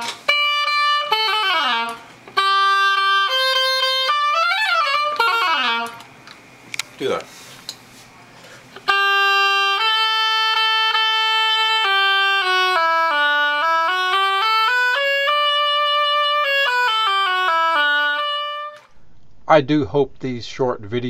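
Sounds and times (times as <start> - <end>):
oboe playing a scale: 0.0 - 6.1, 8.8 - 18.9.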